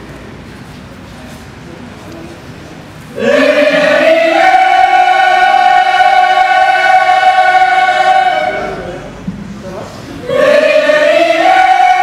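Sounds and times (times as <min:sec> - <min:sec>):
mixed choir holding a chord: 0:03.1 - 0:09.2, 0:10.2 - 0:12.0.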